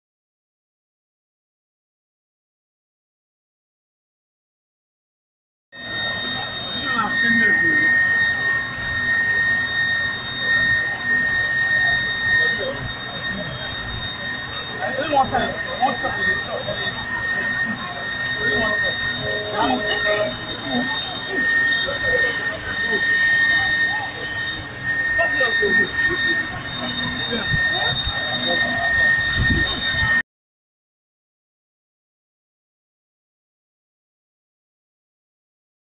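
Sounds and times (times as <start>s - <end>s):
crowd voices: 5.8s - 30.2s
high-pitched alarm tone: 5.8s - 30.2s.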